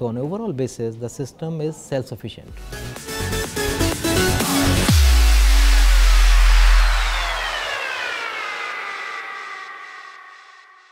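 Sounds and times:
tones gliding downward: 4.5 - 10.9
deep bass boom: 4.6 - 9.3
noisy shimmer: 4.9 - 10.9.

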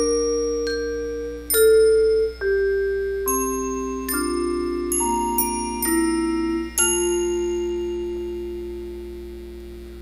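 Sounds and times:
mallet percussion chord ringing: 0.0 - 8.5.

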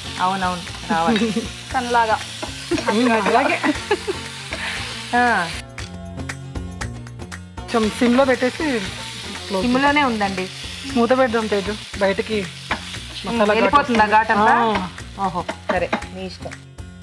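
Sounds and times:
vegetables sizzling in frying pan: 0.0 - 5.6, 7.6 - 16.6.

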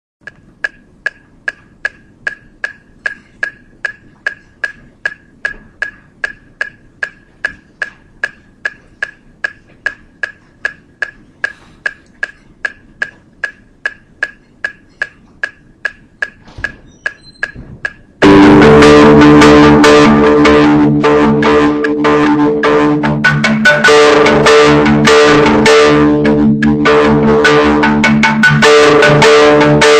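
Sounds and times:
metronome beeping clicks: 0.2 - 29.9.

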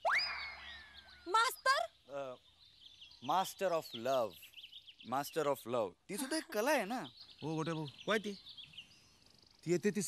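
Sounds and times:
swooping whistle tone: 0.0 - 1.0.

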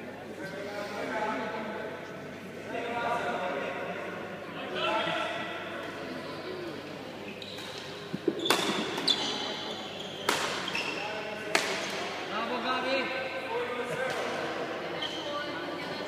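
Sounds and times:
rackets hitting shuttlecock: 7.6 - 9.4, 10.2 - 10.9, 11.5 - 12.0.

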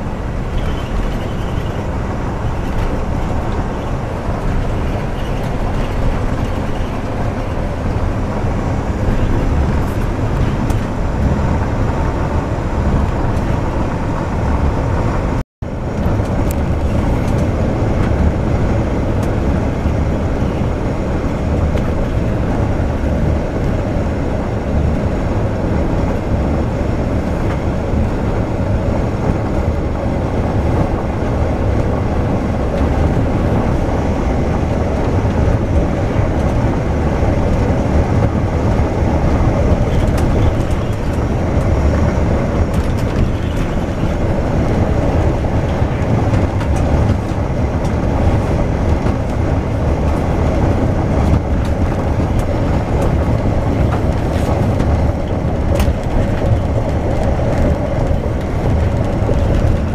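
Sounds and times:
bus engine and road noise: 0.0 - 59.9.

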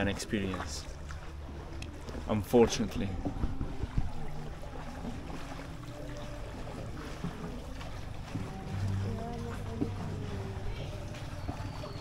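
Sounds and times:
low rumble of rowing boat: 0.0 - 12.0.

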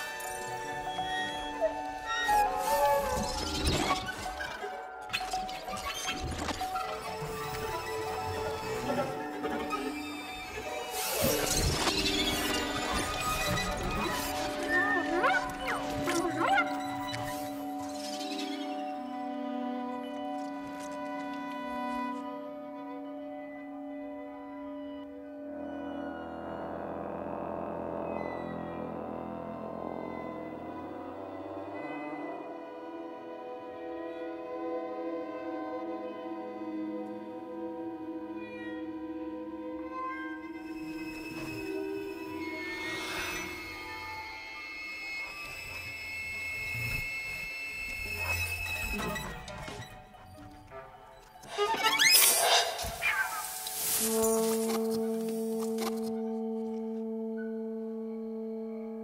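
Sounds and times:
chamber ensemble held tones: 21.8 - 49.5, 53.6 - 59.0.

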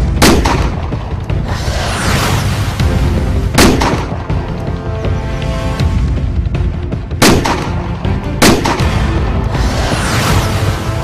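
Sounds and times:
background music: 0.0 - 11.0
loud gunshots: 3.6 - 4.2, 7.2 - 7.8, 8.4 - 9.0.

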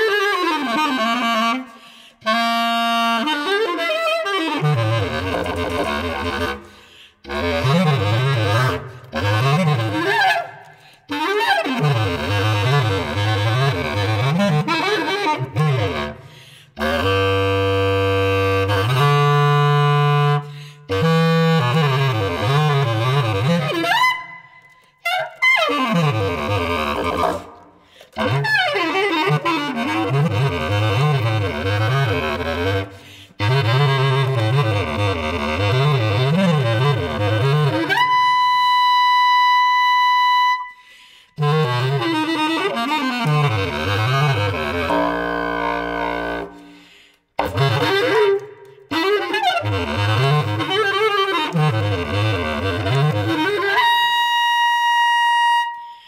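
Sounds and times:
bass clarinet long notes: 0.0 - 40.8, 41.4 - 56.0.

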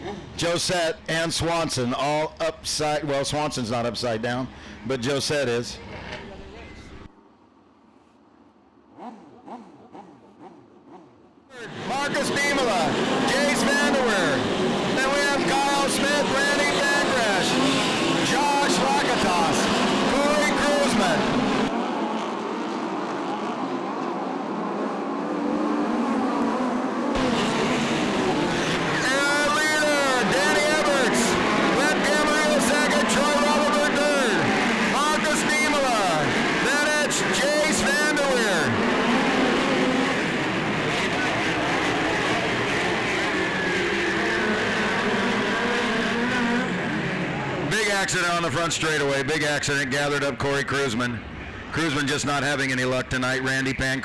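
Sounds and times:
race car engines revving: 8.7 - 54.0.

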